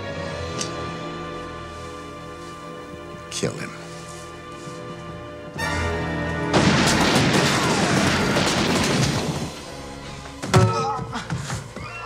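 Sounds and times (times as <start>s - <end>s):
dramatic film score music: 0.0s - 12.0s
volley of gunfire: 6.5s - 9.6s.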